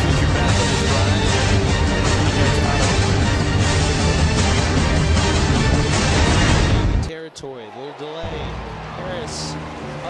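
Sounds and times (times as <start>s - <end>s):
stadium background: 0.0s - 10.0s.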